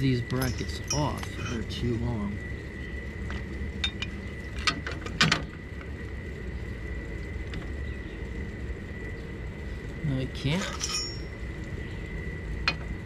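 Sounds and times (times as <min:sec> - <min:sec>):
metal clinks and knocks: 0:00.0 - 0:01.8, 0:03.8 - 0:05.4, 0:10.6 - 0:11.4.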